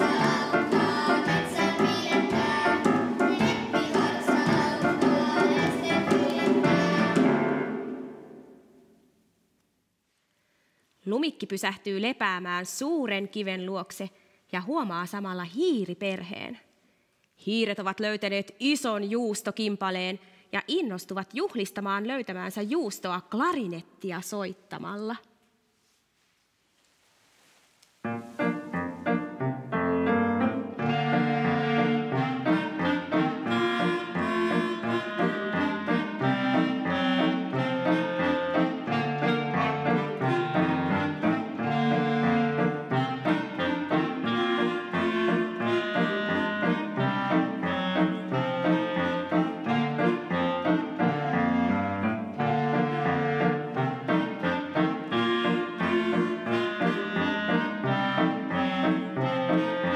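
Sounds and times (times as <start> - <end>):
piano accompaniment: 0.0 - 8.7, 28.0 - 59.9
clarinets playing: 30.7 - 59.9.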